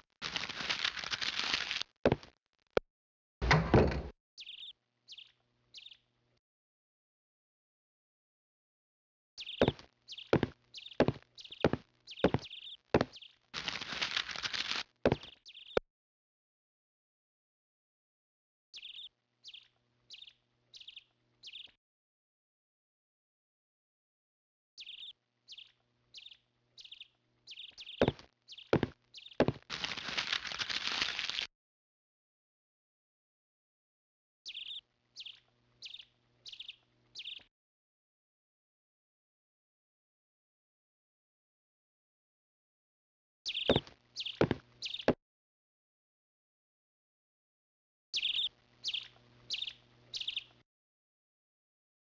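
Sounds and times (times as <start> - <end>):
small bird chirping: 4.4 - 6.2, 9.4 - 15.8, 18.8 - 21.8, 24.8 - 31.1, 34.5 - 37.5, 43.5 - 45.2, 48.2 - 50.6.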